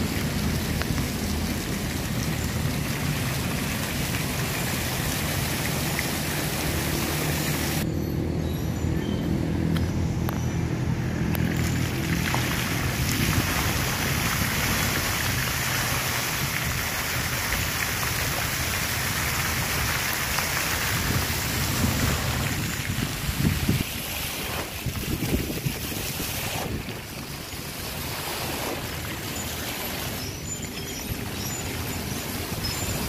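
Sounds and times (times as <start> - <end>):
steady outdoor hiss: 0.0 - 33.0
wind buffeting microphone: 11.8 - 30.2.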